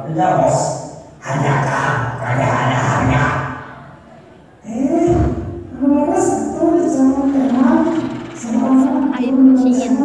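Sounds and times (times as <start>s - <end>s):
man talking over loudspeakers: 0.0s - 3.8s, 4.6s - 10.0s.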